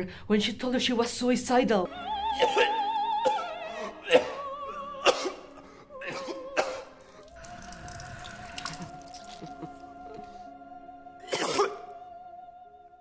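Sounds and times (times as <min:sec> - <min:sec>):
operatic singing: 0:01.9 - 0:13.0
person coughing: 0:05.1 - 0:06.9, 0:11.3 - 0:11.8.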